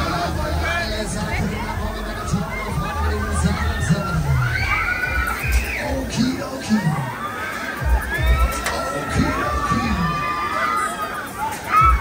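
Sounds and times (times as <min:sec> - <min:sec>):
crowd noise: 0:00.0 - 0:12.0
riders screaming and shouting: 0:00.0 - 0:12.0.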